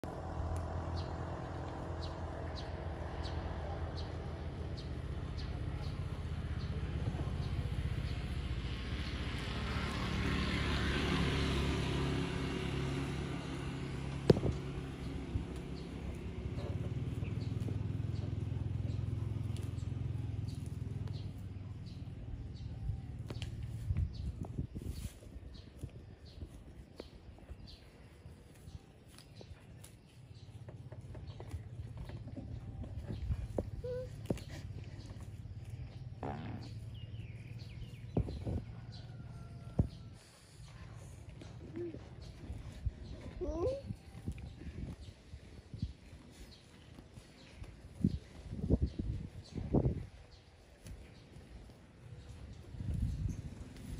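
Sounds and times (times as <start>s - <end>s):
low engine hum: 0.0s - 53.9s
grass being torn: 23.2s - 27.4s, 28.4s - 38.6s.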